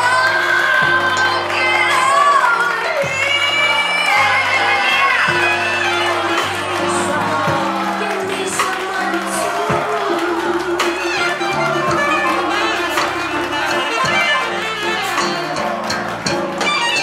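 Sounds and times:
woman singing: 0.0 - 15.9
audience cheering and whooping: 0.0 - 17.0
bass notes: 0.0 - 17.0
live band playing: 0.0 - 17.0.

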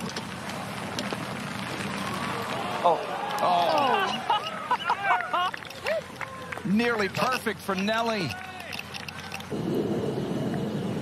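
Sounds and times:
outdoor background hush: 0.0 - 11.0.

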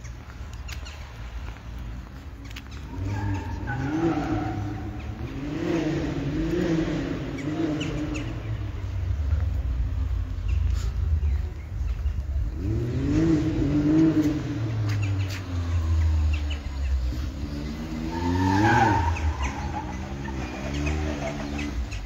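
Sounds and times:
engine revving: 3.0 - 8.4, 12.4 - 22.0.

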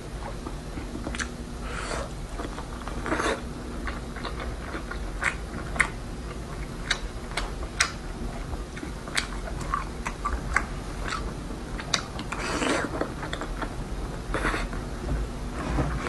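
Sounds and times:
close chewing with mouth smacks: 0.8 - 1.3, 2.4 - 14.8.

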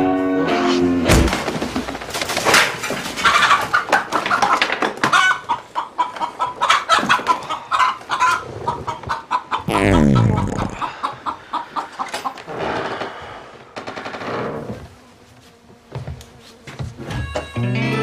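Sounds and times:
chickens clucking and squawking: 2.9 - 12.5.

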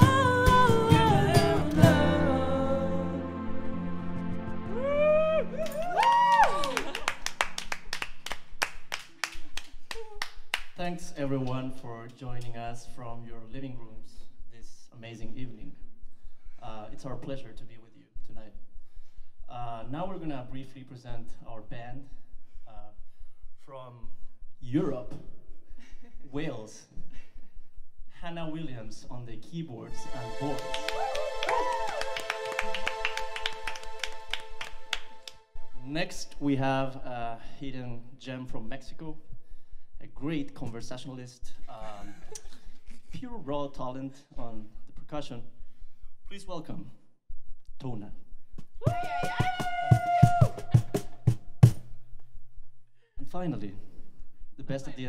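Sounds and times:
held musical tone: 0.0 - 5.8, 29.9 - 36.5
people clapping rhythmically: 5.6 - 10.8, 30.0 - 35.5.

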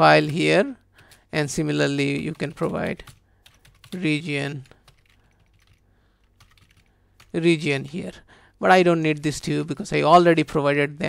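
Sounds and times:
computer keyboard keystrokes: 2.1 - 4.0, 4.6 - 8.0.

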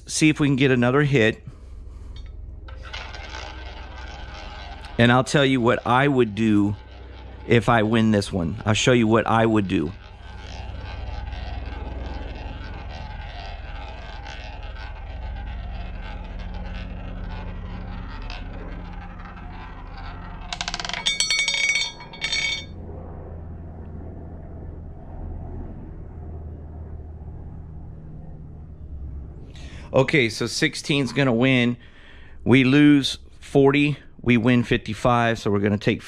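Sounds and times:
roulette ball rolling: 2.1 - 22.7
roulette wheel turning: 2.1 - 22.7.

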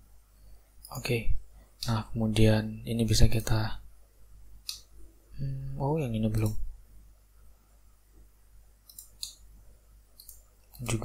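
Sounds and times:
computer mouse clicking: 8.8 - 9.4, 10.2 - 11.0.

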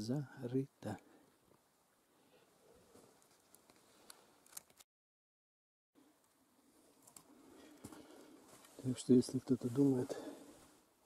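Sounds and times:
faint outdoor background noise: 0.0 - 4.8, 6.0 - 11.0.

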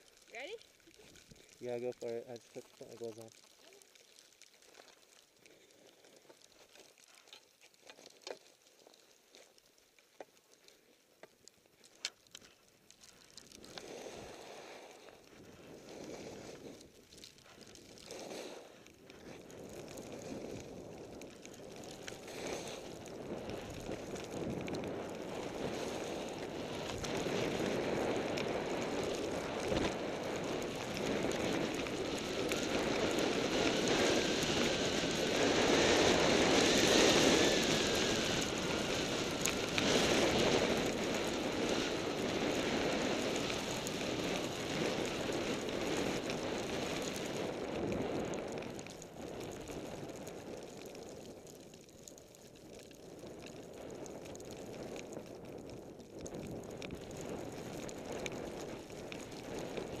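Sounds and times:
skis running through powder snow: 0.0 - 60.0
wind rushing over microphone: 19.3 - 50.9.

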